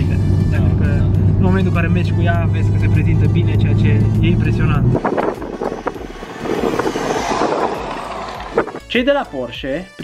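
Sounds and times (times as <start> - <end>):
car driving past: 2.7 - 8.9.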